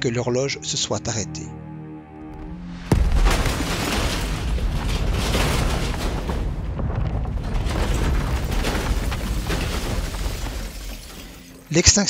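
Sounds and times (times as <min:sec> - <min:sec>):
building collapse rumble: 0:02.4 - 0:11.8
falling debris crashes: 0:02.4 - 0:11.8.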